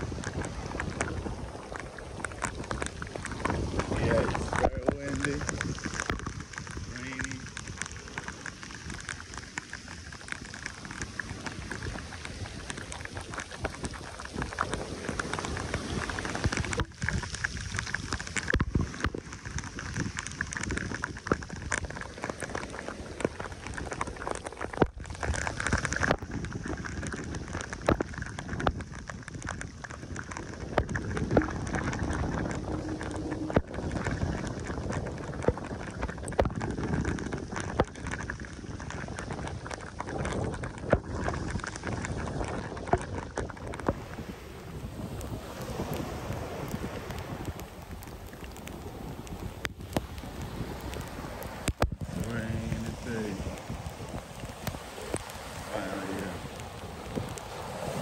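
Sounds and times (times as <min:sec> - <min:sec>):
rain falling: 0:00.0 - 0:58.0
raindrops ticking close by: 0:00.0 - 0:58.0.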